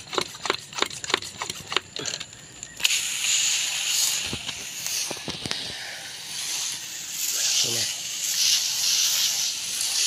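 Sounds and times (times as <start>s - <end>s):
pressure sprayer hissing: 2.8s - 10.0s.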